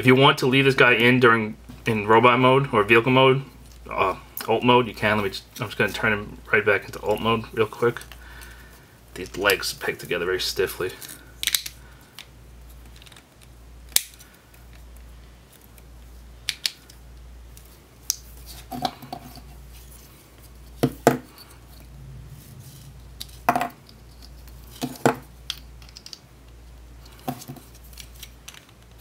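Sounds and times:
plastic toy parts clicking: 0:11.0 - 0:14.8, 0:23.8 - 0:26.2.

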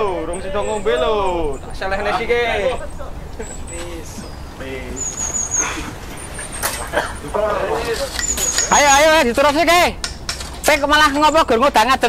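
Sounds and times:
high wavering chirp: 0:00.0 - 0:09.3
outdoor background noise: 0:00.0 - 0:12.0.

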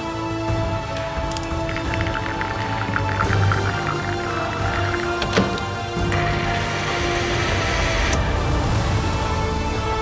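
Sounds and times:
background music sustained notes: 0:00.0 - 0:10.0.

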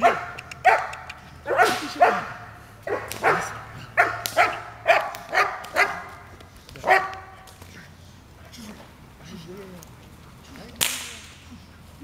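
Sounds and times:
whip crack: 0:01.6 - 0:02.1, 0:03.0 - 0:06.2, 0:10.8 - 0:11.5.

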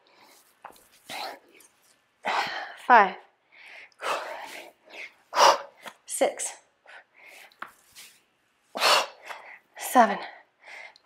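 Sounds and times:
woman breathing hard: 0:02.2 - 0:06.0, 0:06.8 - 0:07.6, 0:08.7 - 0:09.7, 0:10.4 - 0:11.0.

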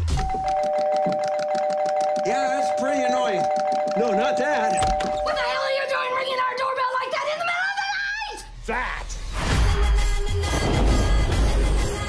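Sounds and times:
doorbell two-pitch electronic tone: 0:03.7 - 0:05.9.

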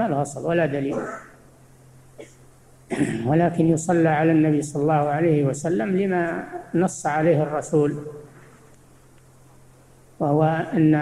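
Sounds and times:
man speaking: 0:00.0 - 0:01.3, 0:03.1 - 0:08.4, 0:10.2 - 0:11.0
faint low hum: 0:00.0 - 0:11.0.

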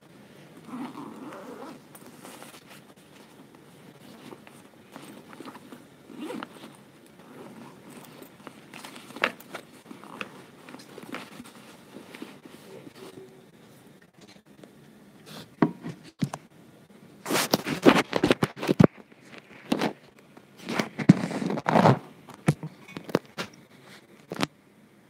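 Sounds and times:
rustles: 0:00.3 - 0:13.4.

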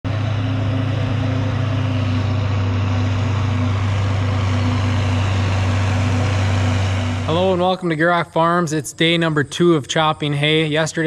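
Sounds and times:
tractor engine running: 0:00.0 - 0:10.8.

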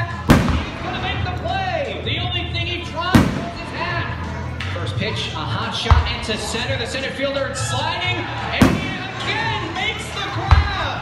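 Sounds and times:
firework booms: 0:00.3 - 0:01.3, 0:03.1 - 0:03.9, 0:08.6 - 0:09.1.

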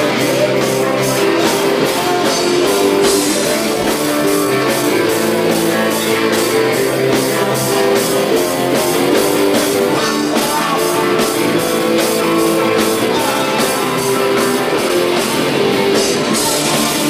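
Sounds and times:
bass guitar: 0:00.0 - 0:17.0
drums keeping a beat: 0:00.0 - 0:17.0
electric guitars: 0:00.0 - 0:17.0.

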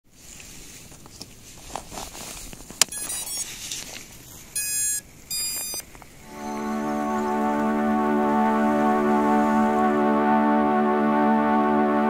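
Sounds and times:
motor startup beeps: 0:02.9 - 0:03.5, 0:04.6 - 0:05.8
keyboard music: 0:04.6 - 0:12.0.

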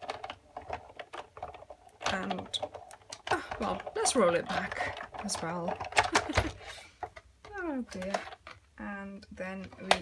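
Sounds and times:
hand-cranked machine clicking: 0:00.0 - 0:06.7.

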